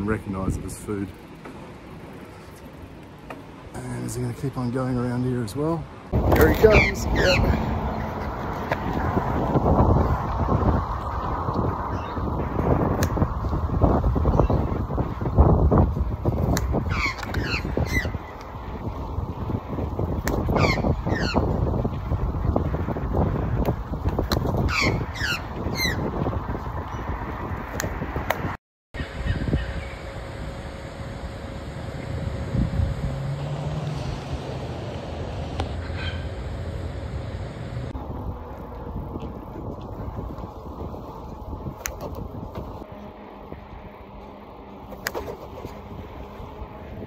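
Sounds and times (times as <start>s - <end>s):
wind on microphone: 6.1s - 30.6s, 31.2s - 36.4s, 37.2s - 44.2s.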